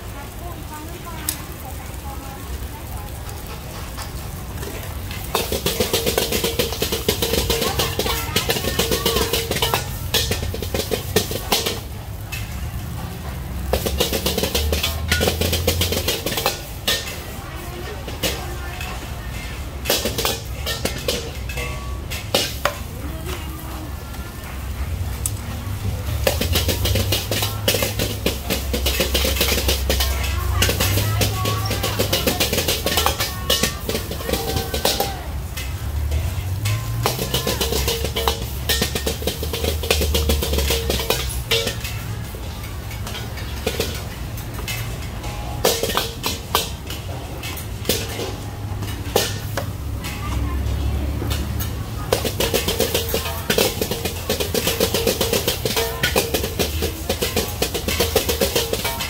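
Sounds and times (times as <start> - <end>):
fried rice sizzling: 0.0 - 59.0
gas burner rumble: 0.0 - 59.0
metal ladle scraping a wok: 3.4 - 59.0.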